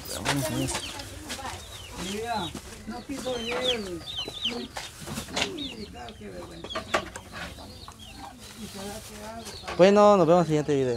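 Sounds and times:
chickens clucking: 0.0s - 10.9s.

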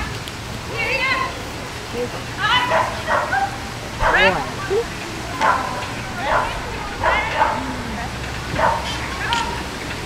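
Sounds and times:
dog barking: 2.5s - 4.5s, 5.4s - 7.8s, 8.6s - 9.1s.

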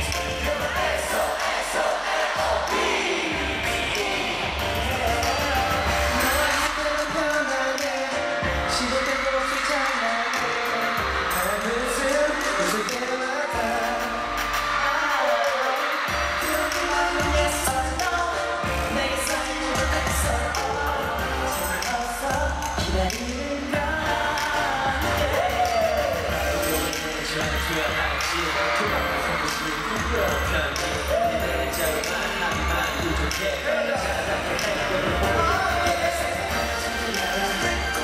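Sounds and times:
bass beat: 0.0s - 7.5s, 16.1s - 38.0s
male vocals singing: 0.0s - 38.0s
pop backing track: 0.0s - 38.0s.

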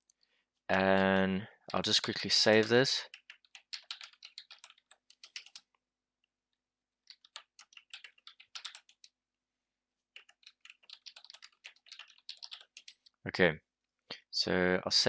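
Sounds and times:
typing on computer keyboard: 2.0s - 5.7s, 7.1s - 9.1s, 10.2s - 13.1s.

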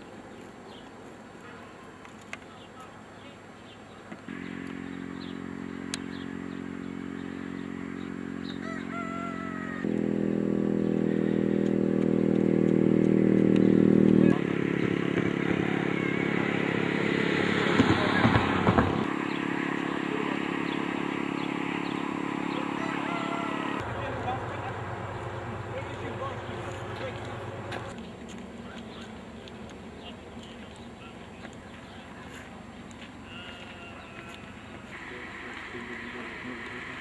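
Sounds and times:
vehicle engine running: 4.2s - 37.0s.

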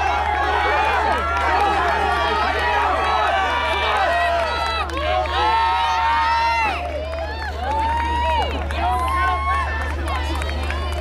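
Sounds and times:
spectators shouting encouragement: 0.0s - 11.0s.

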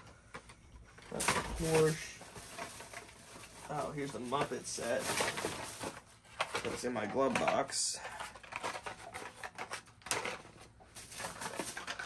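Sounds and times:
plastic clicks and rustles: 0.0s - 12.0s.

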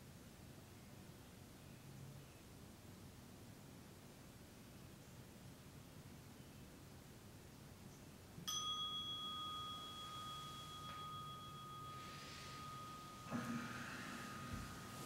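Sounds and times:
meditation bell ringing: 8.5s - 15.0s
cloth rustling: 9.8s - 15.0s.

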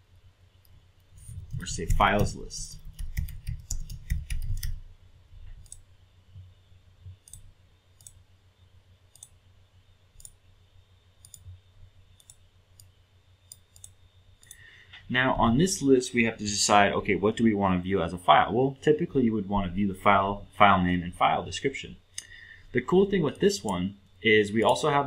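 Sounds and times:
keyboard key presses: 1.3s - 4.8s
mouse clicks: 9.1s - 9.4s.

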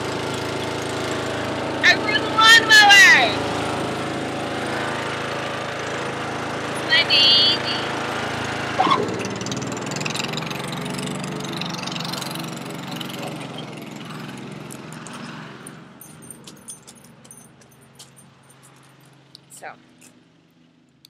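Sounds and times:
lawn mower engine running: 0.0s - 19.5s.

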